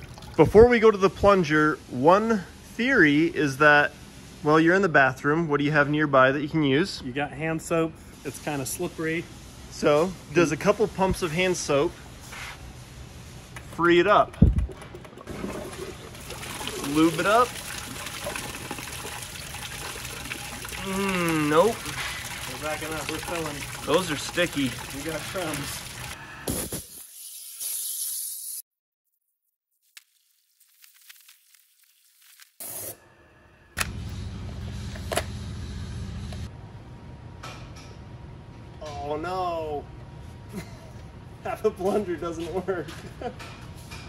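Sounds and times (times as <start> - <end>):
toilet flushing water splashing: 14.6 - 26.2
steady low hum: 33.7 - 38.9.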